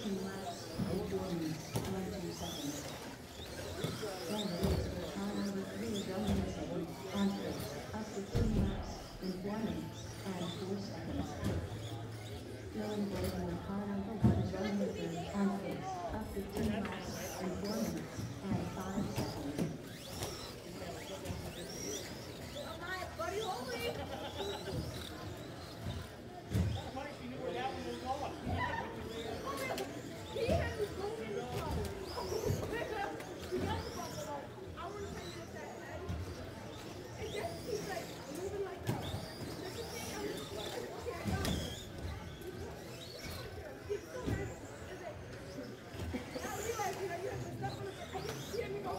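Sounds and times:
electric motors whining: 0.0 - 48.9
people talking indistinctly: 0.0 - 48.9.

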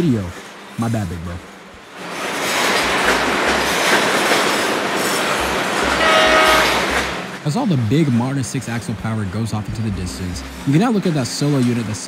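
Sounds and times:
train wheels rumbling on rails: 0.0 - 12.0
steady tone: 5.2 - 9.0.

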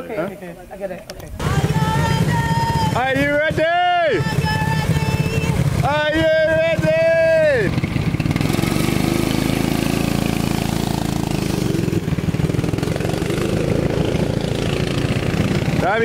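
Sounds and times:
go-kart engines driving past: 1.2 - 16.0.

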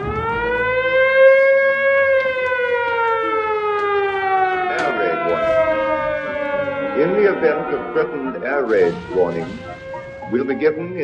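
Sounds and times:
air-raid siren wailing: 0.0 - 11.0.

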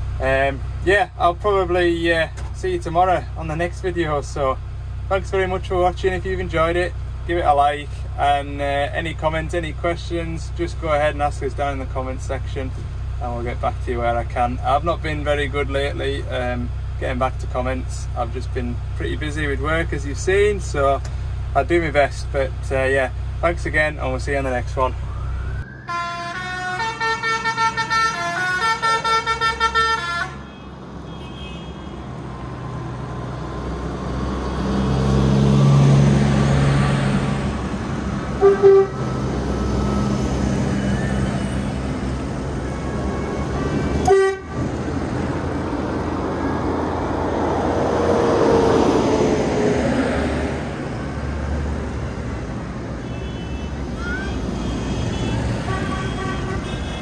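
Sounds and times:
tractors driving past: 0.0 - 57.0
horn toots: 25.9 - 32.1, 38.4 - 39.2, 42.7 - 44.8, 53.0 - 57.0.

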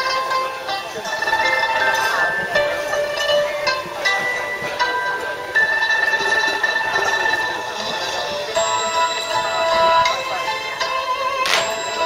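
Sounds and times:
pipa music: 0.0 - 12.0.

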